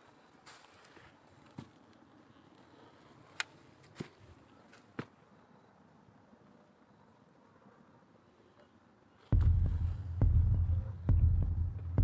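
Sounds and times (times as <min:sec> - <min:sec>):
heavy heartbeat thuds: 0:09.4 - 0:12.0
low throbbing drone: 0:09.4 - 0:12.0.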